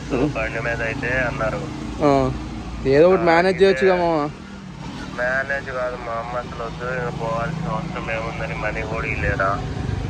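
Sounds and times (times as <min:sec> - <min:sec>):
man talking on phone: 0:00.0 - 0:04.4, 0:05.1 - 0:09.6.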